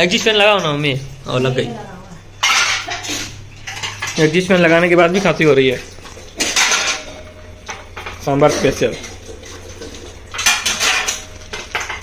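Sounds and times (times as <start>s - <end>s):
exhaust fan humming: 0.0s - 12.0s.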